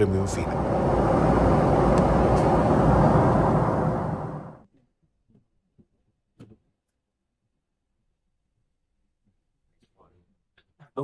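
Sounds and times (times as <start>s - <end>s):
airliner cabin engine rush: 0.0s - 4.7s.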